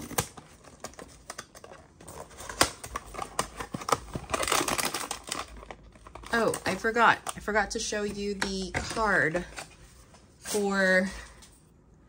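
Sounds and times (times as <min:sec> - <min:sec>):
cardboard box tearing open: 0:00.0 - 0:01.2, 0:02.0 - 0:06.3.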